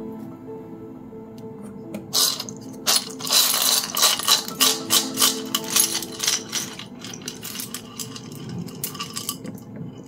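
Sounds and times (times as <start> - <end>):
bones and shells rattling in shell: 2.1 - 9.6.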